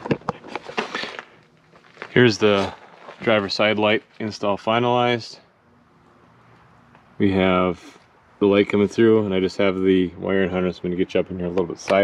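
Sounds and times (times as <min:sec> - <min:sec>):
camera handling rustle: 0:00.0 - 0:03.2.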